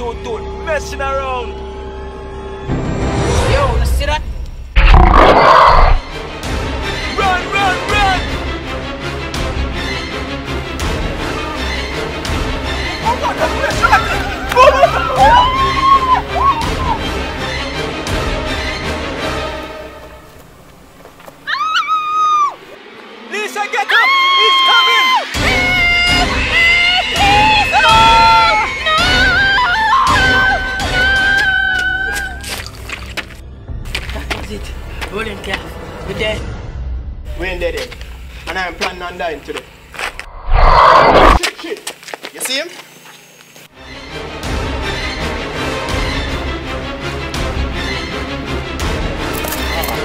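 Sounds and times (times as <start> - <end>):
tense score music: 0.0 - 21.6, 22.4 - 41.4, 43.7 - 50.0
rising wailing cry: 14.5 - 17.1, 21.5 - 22.7.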